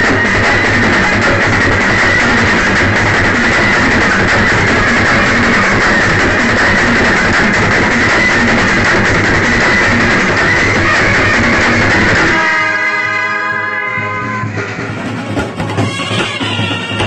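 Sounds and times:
brass band music: 0:00.0 - 0:17.0.

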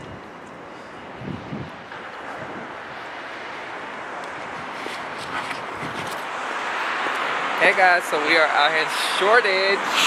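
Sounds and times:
hiss of wet street: 0:08.9 - 0:10.0.

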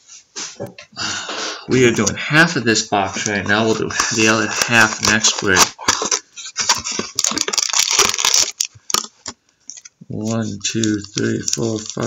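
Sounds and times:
card packs rustling and scraping: 0:03.2 - 0:12.0.

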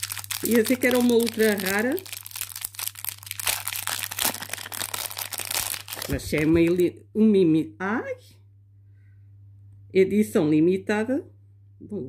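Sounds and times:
plastic wrapper crinkling: 0:00.0 - 0:06.8.

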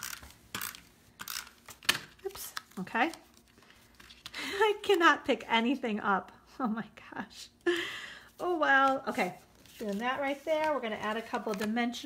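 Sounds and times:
tape runner ratcheting on paper: 0:00.0 - 0:02.1.

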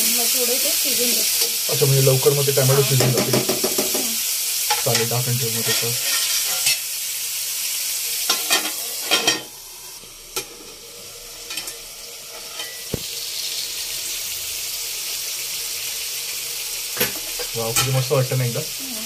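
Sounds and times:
food sizzling in hot oil: 0:00.0 - 0:19.0
spoon stirring against pan: 0:02.7 - 0:06.9.

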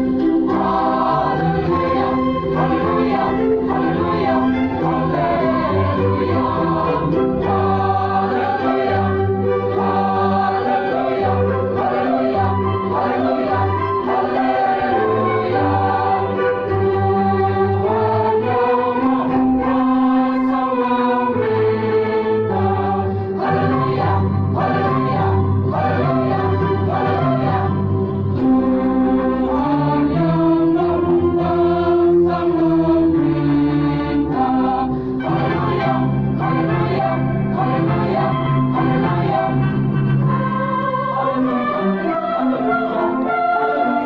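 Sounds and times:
church choir singing: 0:00.0 - 0:44.0.

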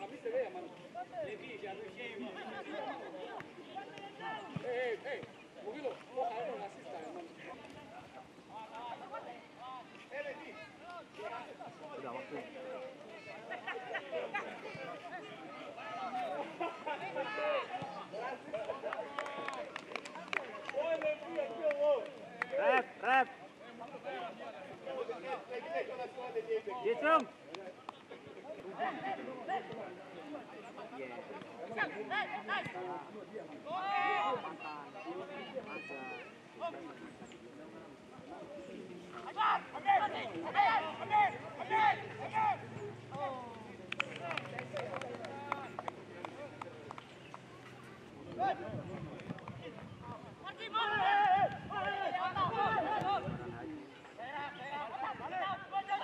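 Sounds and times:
players shouting: 0:10.3 - 0:19.8, 0:20.4 - 0:37.1, 0:38.2 - 0:48.7, 0:50.4 - 0:56.0.

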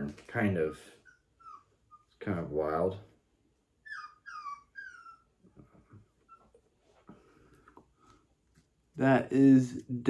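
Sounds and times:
puppy whining: 0:00.9 - 0:02.2, 0:03.6 - 0:07.0.

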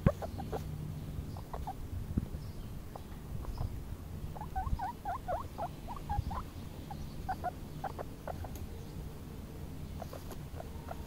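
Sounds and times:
baby guinea pig squeaking: 0:00.0 - 0:00.7, 0:01.3 - 0:01.8, 0:02.9 - 0:08.7, 0:10.0 - 0:11.0.

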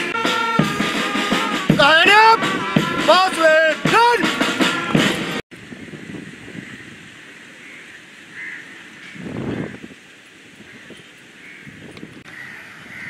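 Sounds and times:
music: 0:00.0 - 0:05.4
outdoor background noise: 0:04.2 - 0:13.0.

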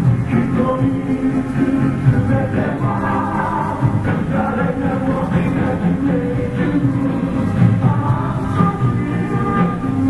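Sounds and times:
pop song with band and vocals: 0:00.0 - 0:10.0.

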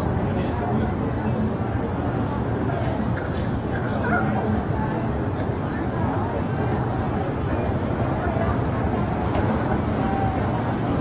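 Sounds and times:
low street noise: 0:00.0 - 0:11.0.

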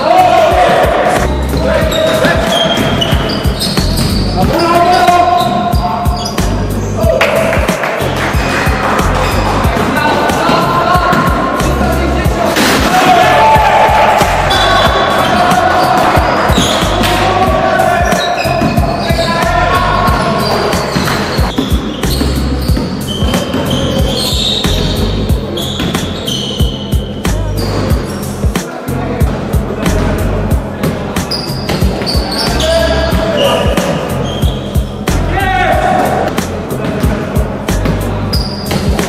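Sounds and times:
players' voices: 0:00.0 - 0:39.0
music with steady bass line: 0:00.6 - 0:39.0.

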